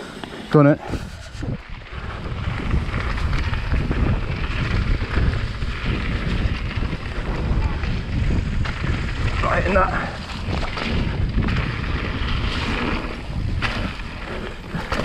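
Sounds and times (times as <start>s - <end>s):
bike tyres rolling on gravel: 0.0s - 15.0s
wind buffeting microphone: 0.0s - 15.0s.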